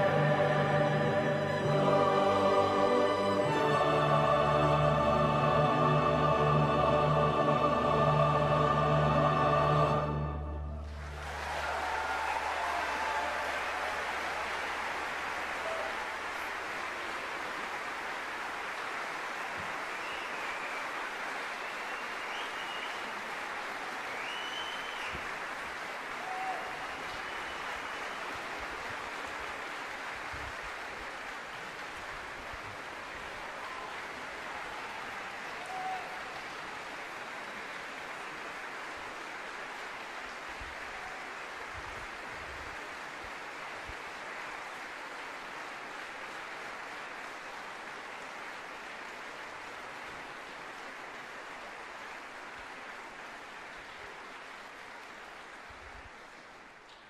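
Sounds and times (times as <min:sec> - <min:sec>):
audience applauding: 0:00.0 - 0:56.9.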